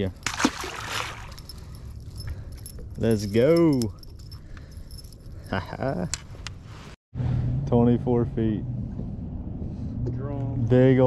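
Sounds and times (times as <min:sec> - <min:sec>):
metal wires clinking: 0:00.0 - 0:06.4
water splash: 0:00.2 - 0:01.4.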